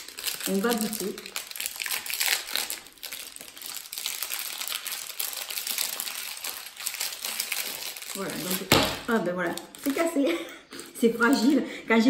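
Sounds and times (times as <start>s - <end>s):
plastic wrapper crinkling: 0.0s - 11.6s.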